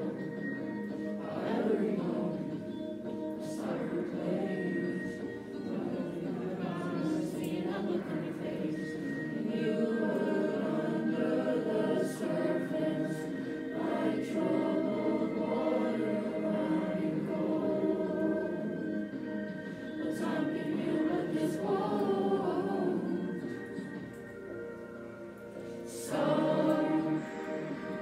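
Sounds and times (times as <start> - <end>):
boys' choir singing: 0.0 - 0.6, 1.2 - 24.1, 25.8 - 28.0.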